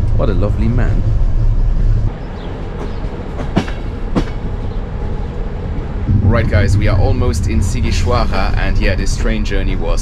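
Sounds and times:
train running rumble: 0.0s - 10.0s
train wheels clacking: 2.6s - 4.6s.

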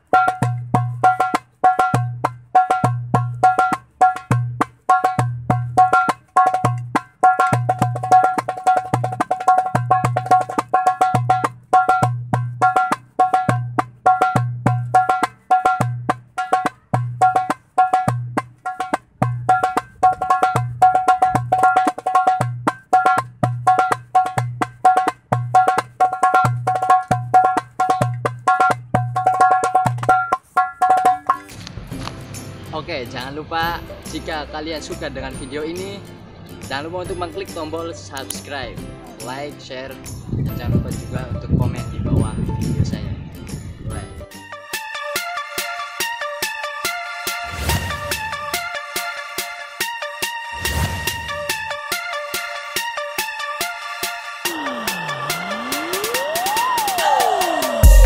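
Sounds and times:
hand drum rhythm: 0.0s - 31.6s, 54.4s - 58.0s.

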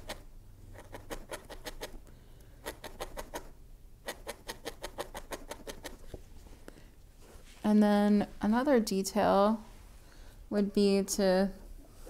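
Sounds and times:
felting needle poking into foam: 2.6s - 6.1s.

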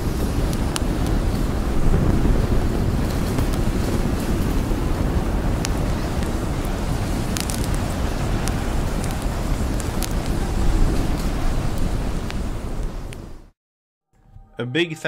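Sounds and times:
low rumbling noise: 0.0s - 13.5s.

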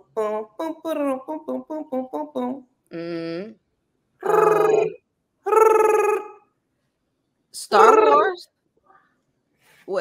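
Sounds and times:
woman imitating phone ringing: 7.7s - 8.4s.

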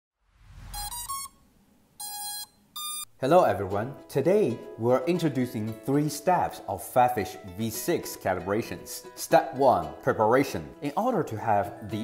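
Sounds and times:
rising electronic beeps: 0.5s - 1.4s, 2.0s - 3.1s.

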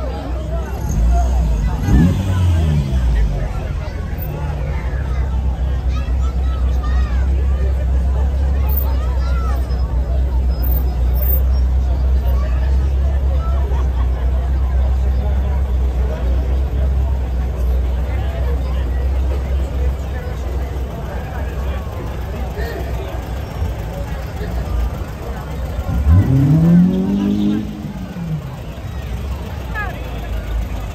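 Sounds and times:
classic cars rumbling: 0.0s - 30.9s
crowd chatter: 0.0s - 30.9s.

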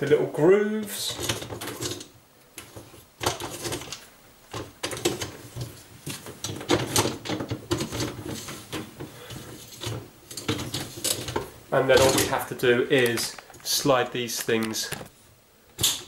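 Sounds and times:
wire rack rattling: 9.6s - 13.4s.

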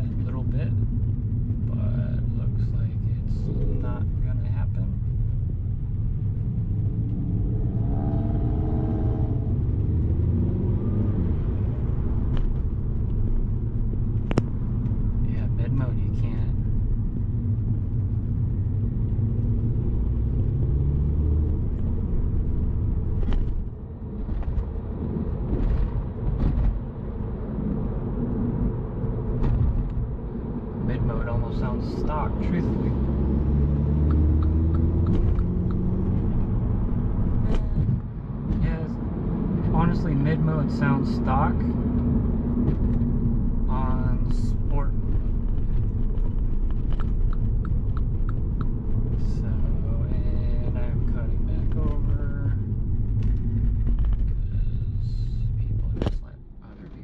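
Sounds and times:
car engine running: 0.0s - 57.0s.

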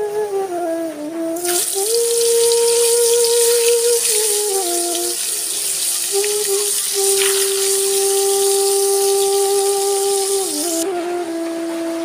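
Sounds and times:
long held music note: 1.2s - 12.0s
food frying in oil: 1.4s - 10.8s.

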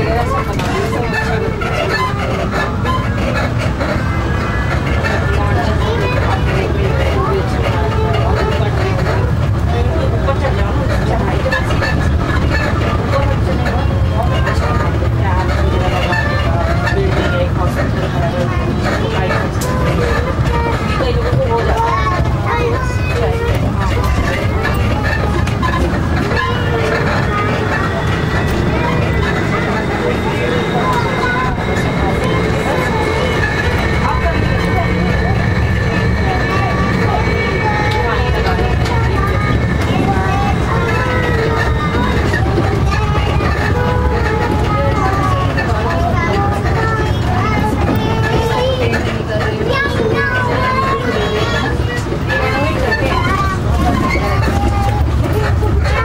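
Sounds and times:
indistinct voices talking: 0.0s - 56.0s
road vehicle rumble from inside: 0.0s - 56.0s.

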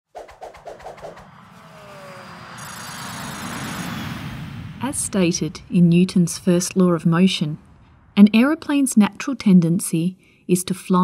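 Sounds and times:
whoosh: 0.0s - 8.9s
quick electronic pulses: 0.1s - 4.4s.

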